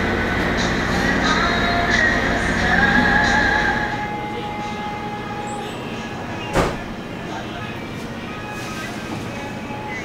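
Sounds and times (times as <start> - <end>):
ship engine drone: 0.0 - 10.0.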